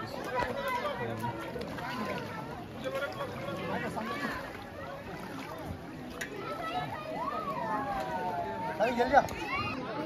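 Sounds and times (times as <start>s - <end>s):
babble of conversation: 0.0s - 10.0s.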